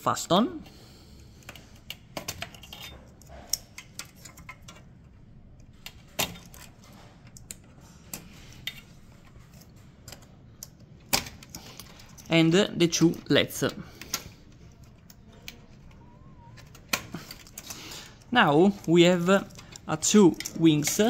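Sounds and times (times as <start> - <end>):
small metallic clicks and scrapes: 1.3 - 12.4, 13.0 - 21.0.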